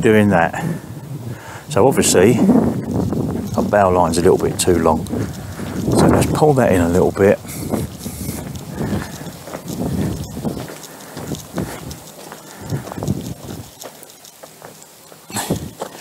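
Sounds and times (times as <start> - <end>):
footsteps on bark chips: 1.9 - 16.0.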